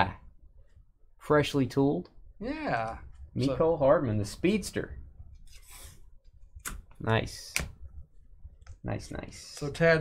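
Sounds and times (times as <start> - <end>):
trading cards sliding: 5.4 - 6.0.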